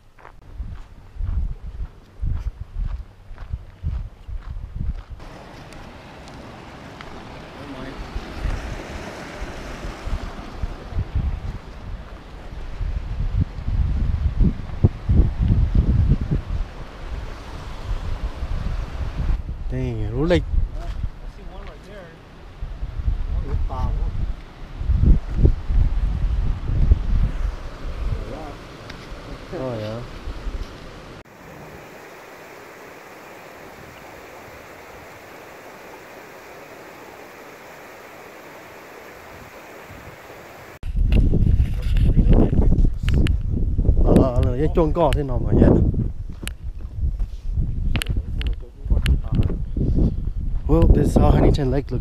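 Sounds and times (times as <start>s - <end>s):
wind buffeting microphone: 0.2s - 21.7s, 22.4s - 31.2s, 39.3s - 52.0s
steady outdoor rushing noise: 5.2s - 47.2s.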